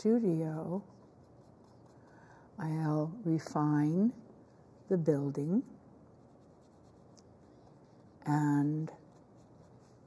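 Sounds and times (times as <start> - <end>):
paintbrush scratching on canvas: 0.3 - 2.2, 6.1 - 10.0.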